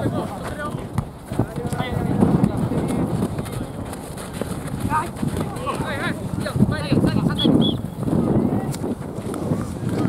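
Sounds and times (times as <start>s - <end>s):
running feet on hard ground: 0.0s - 10.0s.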